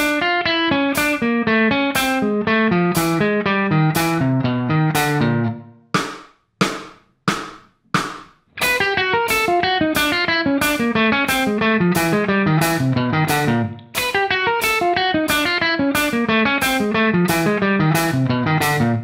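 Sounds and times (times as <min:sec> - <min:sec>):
electric guitar picking single notes: 0:00.0 - 0:06.1, 0:08.5 - 0:19.0.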